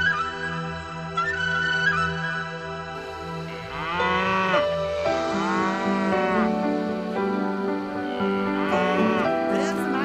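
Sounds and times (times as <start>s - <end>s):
background music: 0.0s - 10.0s
cow mooing: 3.4s - 6.8s, 8.2s - 9.5s.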